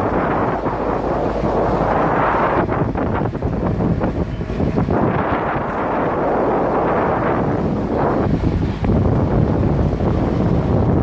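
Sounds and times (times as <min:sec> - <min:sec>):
boat engine rumble: 0:00.0 - 0:11.0
wind buffeting microphone: 0:00.0 - 0:11.0.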